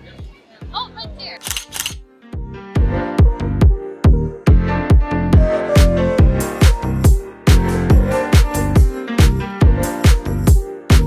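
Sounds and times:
camera shutter clicks: 0:01.4 - 0:02.0
electronic dance music: 0:05.8 - 0:11.0.

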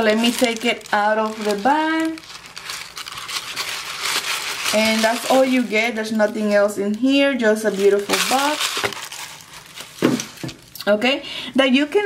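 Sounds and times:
tissue paper crinkling: 0:00.0 - 0:10.7.

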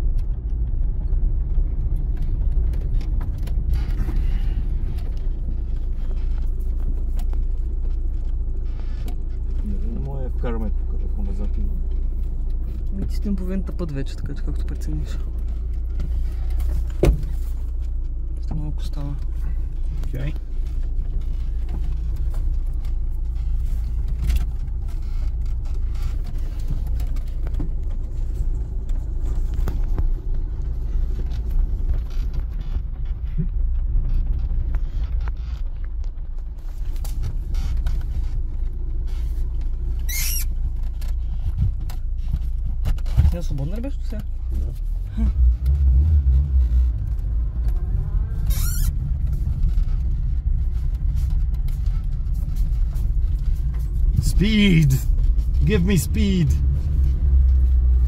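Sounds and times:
car engine low drone: 0:00.0 - 0:58.0
brief high squeak: 0:40.0 - 0:40.5, 0:48.5 - 0:49.0.

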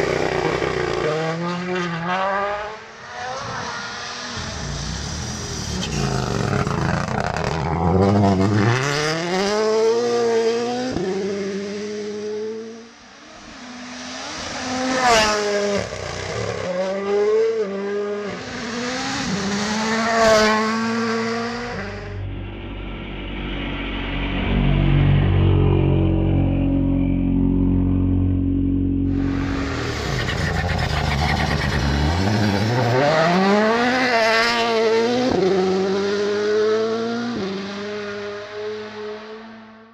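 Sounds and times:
rally car engine revving: 0:00.0 - 0:22.4, 0:23.6 - 0:39.9.

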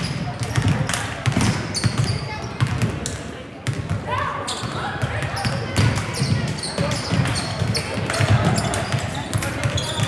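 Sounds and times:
sneaker squeak: 0:00.0 - 0:02.9, 0:04.3 - 0:10.0
basketballs bouncing on wooden floor: 0:00.0 - 0:10.0.

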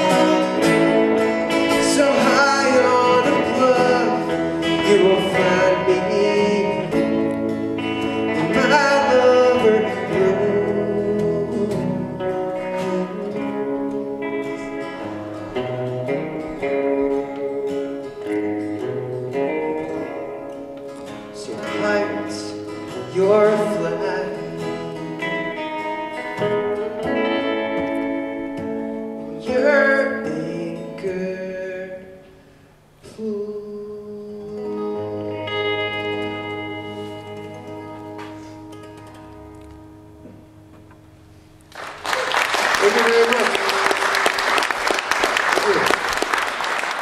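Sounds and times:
man singing: 0:00.0 - 0:14.2, 0:19.5 - 0:20.6, 0:21.3 - 0:25.1, 0:29.3 - 0:32.3, 0:33.0 - 0:36.0
acoustic guitar strumming: 0:00.0 - 0:42.1
electric guitar: 0:00.0 - 0:47.0.

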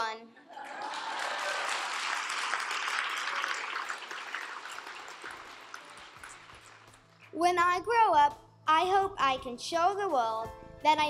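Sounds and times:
audience applauding: 0:00.5 - 0:07.3.

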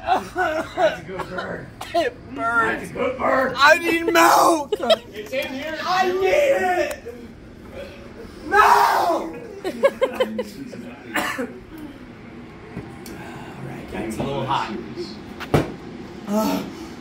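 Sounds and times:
voices: 0:00.0 - 0:15.4
harsh coughs: 0:00.5 - 0:02.2, 0:11.1 - 0:11.6.

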